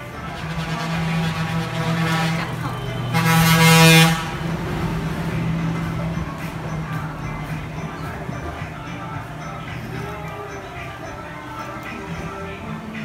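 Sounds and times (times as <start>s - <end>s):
horn blaring: 0.0s - 8.1s
low steady drone: 0.0s - 13.0s.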